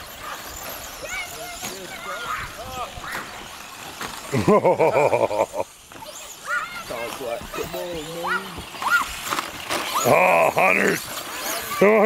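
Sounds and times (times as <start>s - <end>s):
indistinct voices calling out: 9.9s - 12.0s.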